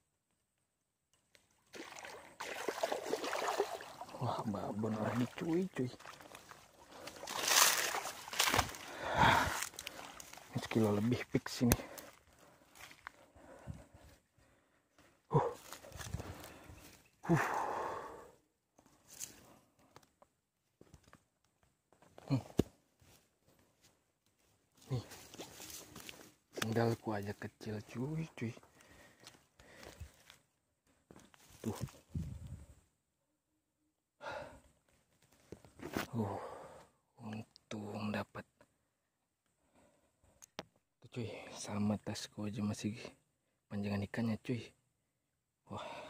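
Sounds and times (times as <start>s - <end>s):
man sighing and exhaling: 8.4s - 10.3s, 15.1s - 18.5s, 34.2s - 34.7s, 36.0s - 37.0s, 45.7s - 46.0s
breathy exhale: 8.8s - 10.2s, 16.4s - 18.4s
scuffing on dry grass: 12.0s - 13.2s, 23.0s - 26.6s
man grunting: 15.3s - 15.7s, 17.3s - 18.1s.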